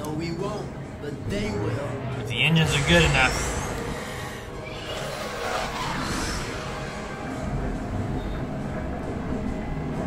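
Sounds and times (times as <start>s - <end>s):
background music: 0.0s - 10.0s
rushing space effect: 4.6s - 8.0s.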